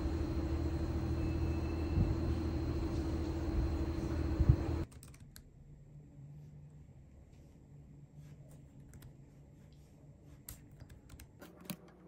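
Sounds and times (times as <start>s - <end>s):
low rumble with constant hum: 0.0s - 4.9s.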